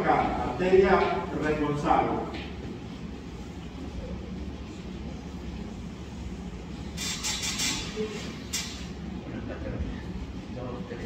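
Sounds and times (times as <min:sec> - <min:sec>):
low room hum and rumble: 0:00.0 - 0:11.0.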